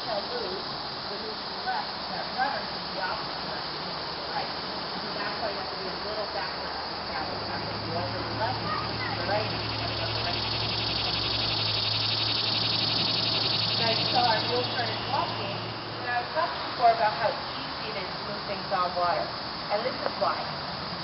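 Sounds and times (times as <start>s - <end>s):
cicada buzzing: 0.0s - 21.0s
distant voices: 0.0s - 21.0s
low steady hum: 0.0s - 21.0s.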